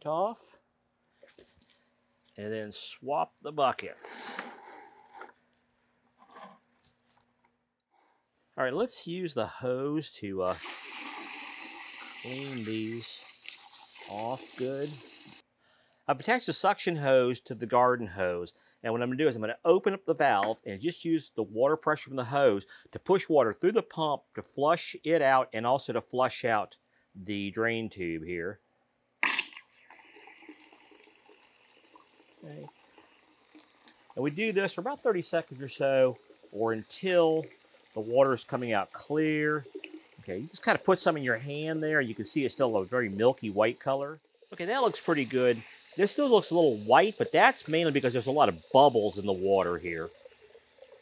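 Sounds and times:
paint bucket being moved: 4.0s - 5.4s
water gushing into a bucket: 10.4s - 15.4s, 29.2s - 51.0s.

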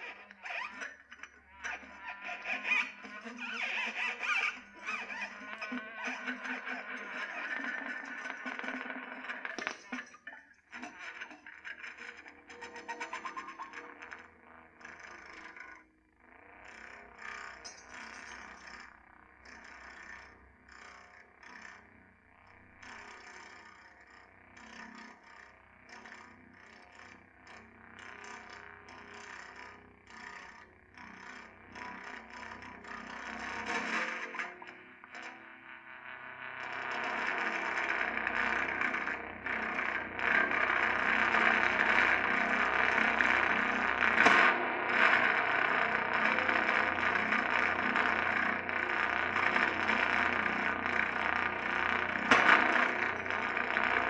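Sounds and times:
distorted guitar noise drone: 0.0s - 11.0s, 31.5s - 54.0s
electric guitar crackling and scraping: 0.0s - 18.9s, 28.0s - 54.0s.

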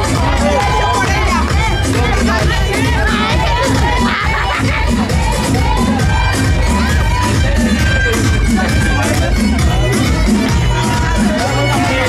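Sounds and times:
crowd shouting and cheering: 0.0s - 12.0s
loud batucada drumming: 0.0s - 12.0s.

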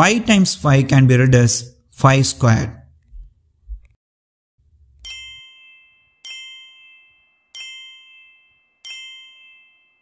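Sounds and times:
bright ding: 5.0s - 10.0s.

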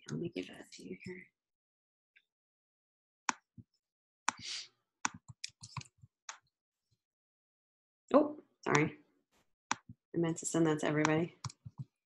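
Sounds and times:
keyboard and mouse clicks: 5.1s - 6.4s, 11.0s - 12.0s.

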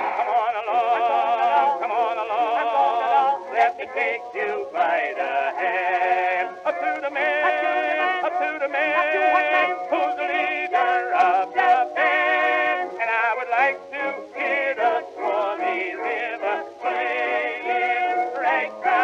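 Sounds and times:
male vocal duet: 0.0s - 19.0s
small orchestra: 0.0s - 19.0s.

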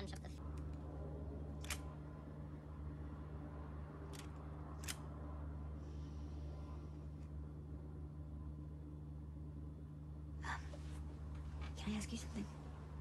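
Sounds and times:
low steady hum: 0.0s - 13.0s.

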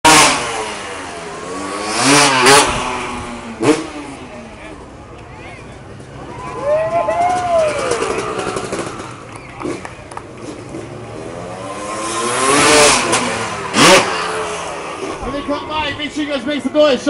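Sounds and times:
dirt bike engine revving: 0.0s - 4.6s, 7.6s - 16.2s.

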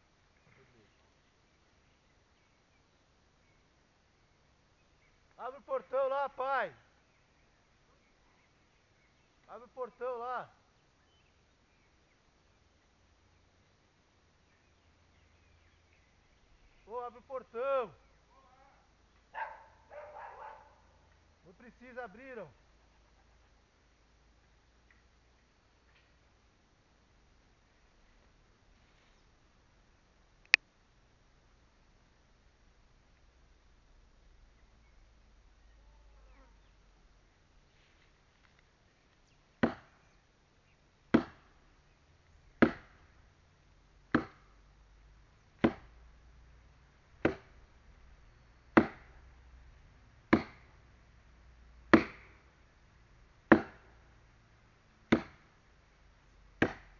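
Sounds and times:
dog barking: 18.6s - 21.1s
chopping strikes into wood: 39.6s - 40.0s, 41.1s - 41.5s, 42.6s - 43.0s, 44.1s - 44.5s, 45.6s - 46.0s, 47.2s - 47.6s, 48.8s - 49.2s, 50.3s - 50.7s, 51.9s - 52.4s, 53.5s - 53.9s, 55.1s - 55.5s, 56.6s - 56.9s.

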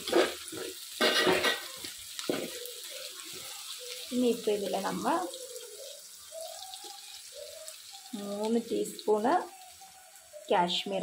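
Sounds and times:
faint sizzling of frying in oil: 0.0s - 11.0s.

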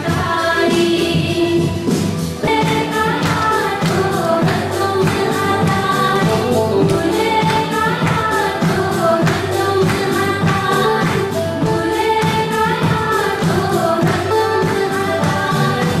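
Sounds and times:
gospel singing over a beat: 0.0s - 16.0s.

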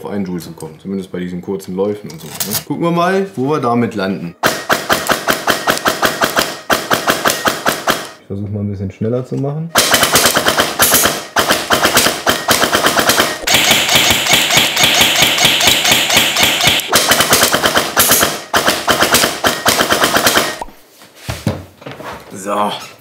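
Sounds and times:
airsoft gun full-auto bursts: 4.4s - 8.2s, 9.8s - 20.6s.

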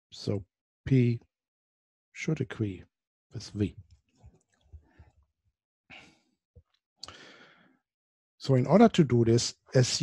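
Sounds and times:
short breath: 7.0s - 7.8s.

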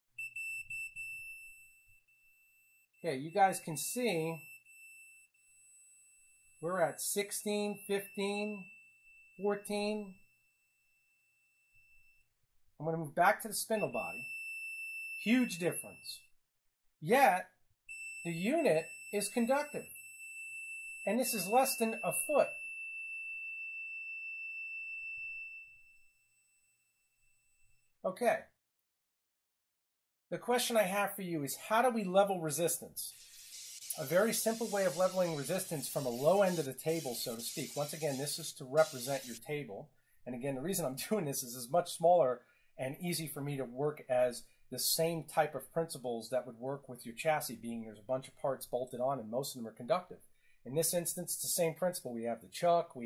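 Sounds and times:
multimeter continuity beep: 0.2s - 12.3s, 13.6s - 16.4s, 17.9s - 22.8s, 33.1s - 39.4s.

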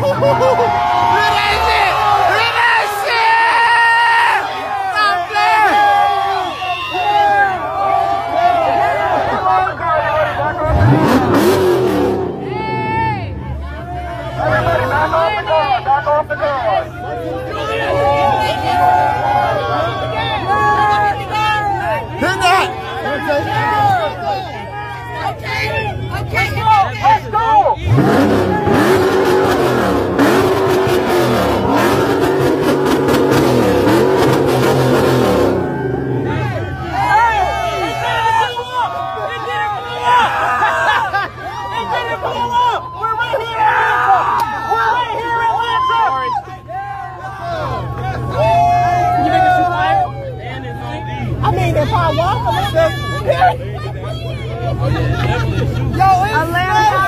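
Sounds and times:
harsh rush of noise: 7.0s - 15.7s, 27.8s - 50.3s
car engine revving hard: 10.5s - 13.6s, 27.8s - 36.7s.

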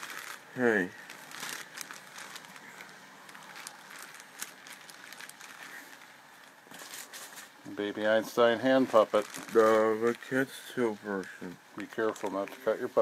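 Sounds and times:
plastic bag crinkling: 0.0s - 13.0s.

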